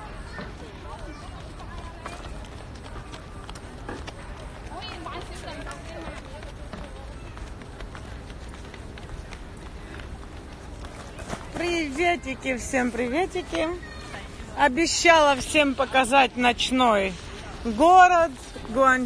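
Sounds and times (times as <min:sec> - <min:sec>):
city street noise: 0:00.0 - 0:19.0.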